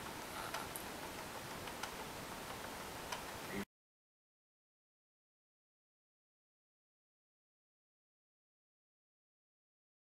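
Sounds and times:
steady background hiss: 0.0s - 3.6s
faint clicks: 0.4s - 3.4s.

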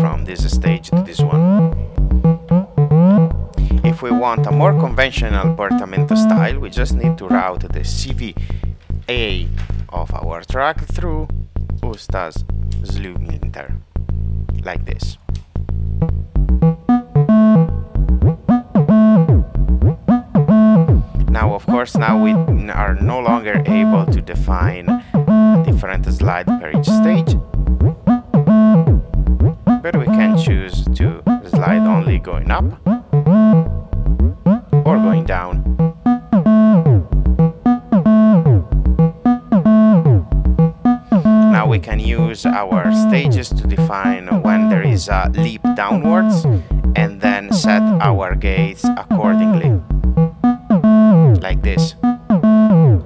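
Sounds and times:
gliding synthesizer melody: 0.0s - 8.2s, 15.8s - 53.0s
low held tone: 0.0s - 8.3s, 15.8s - 53.0s.

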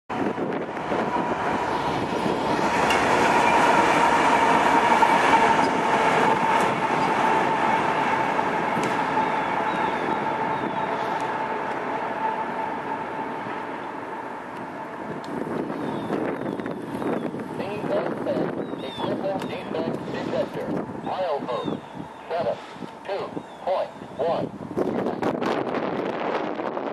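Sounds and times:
steady high whine: 0.1s - 24.9s
diesel locomotives passing: 0.1s - 26.9s.

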